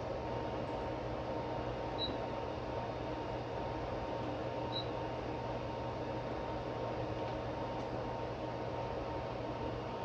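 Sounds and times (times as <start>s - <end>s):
cooling fans whirring: 0.0s - 10.0s.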